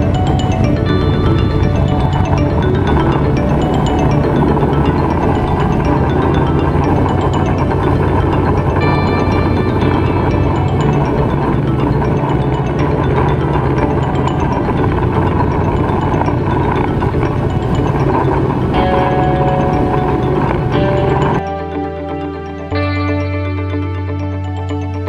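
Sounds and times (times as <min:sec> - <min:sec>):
music with mallet percussion: 0:00.0 - 0:25.0.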